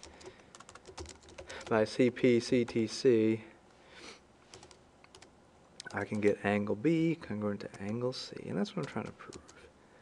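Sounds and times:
computer keyboard keystrokes: 0:00.0 - 0:01.8, 0:04.5 - 0:06.4.

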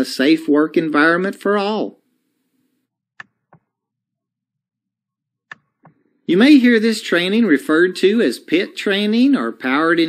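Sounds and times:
computer mouse clicks: 0:03.2 - 0:03.7, 0:05.5 - 0:06.1.

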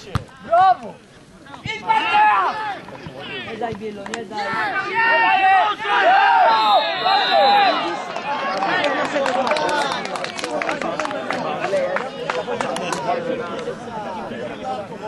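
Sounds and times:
men shouting: 0:04.4 - 0:08.0.

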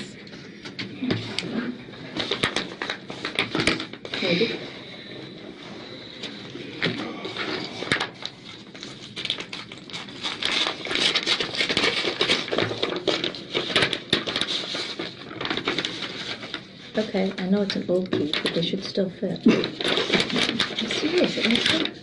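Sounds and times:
packaging and gloves rustling: 0:00.0 - 0:22.0.

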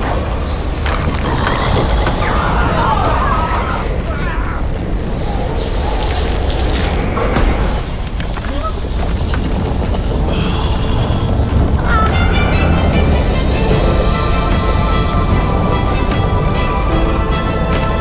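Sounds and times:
deep rumbling booms: 0:00.0 - 0:18.0
music: 0:10.2 - 0:18.0.

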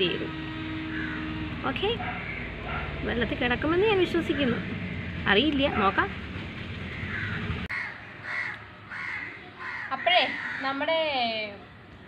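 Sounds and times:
bird calling: 0:00.8 - 0:01.4, 0:06.7 - 0:10.9.

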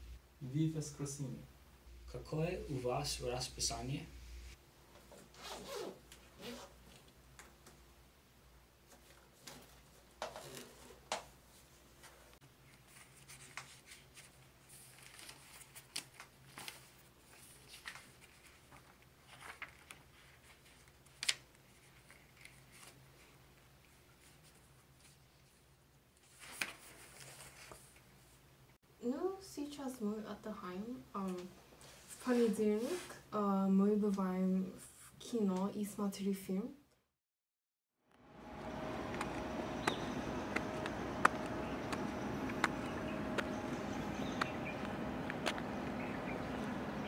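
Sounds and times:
backpack zipper opening: 0:05.2 - 0:06.9, 0:10.3 - 0:11.0
notebook pages rustling: 0:08.9 - 0:25.6, 0:26.2 - 0:28.4.

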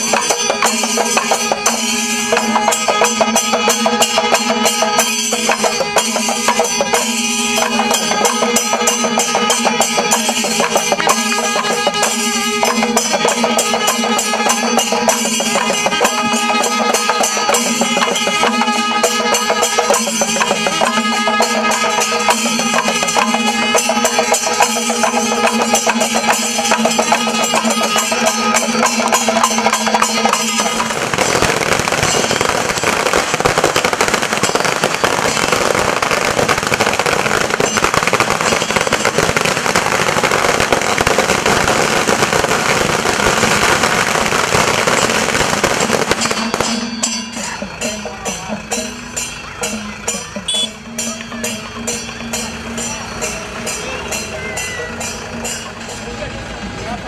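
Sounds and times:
firecrackers crackling: 0:00.0 - 0:55.9
beating percussion: 0:00.0 - 0:57.0.

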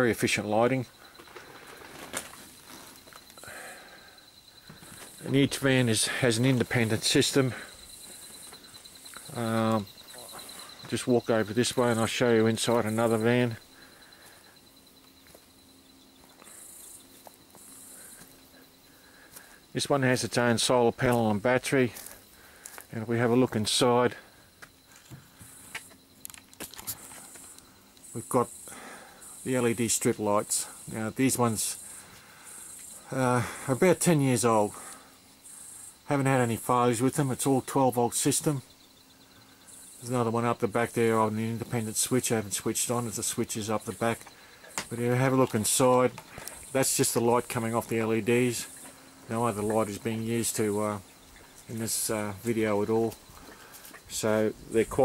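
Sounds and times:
night insects chirring: 0:00.0 - 0:55.0.

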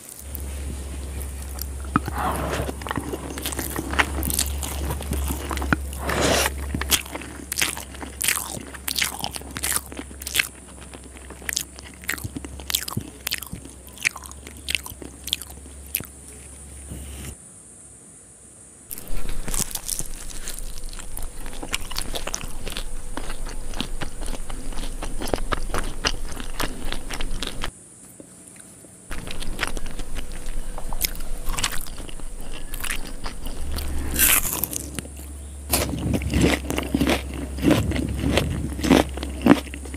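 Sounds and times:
chewing and crunching: 0:00.0 - 0:17.4, 0:18.9 - 0:39.9
wet mouth clicks: 0:01.2 - 0:08.3.

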